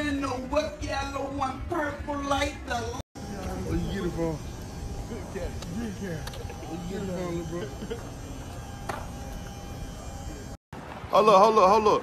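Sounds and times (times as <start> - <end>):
thin steady whine: 2.3 - 10.6
low mechanical hum: 3.2 - 10.6.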